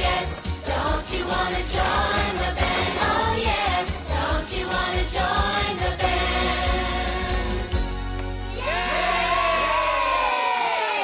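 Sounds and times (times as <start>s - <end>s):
children cheering and whooping: 8.6s - 11.0s.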